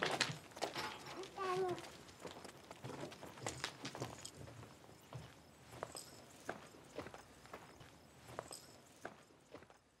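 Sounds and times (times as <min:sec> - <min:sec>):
footsteps on a hard surface: 0:00.0 - 0:09.9.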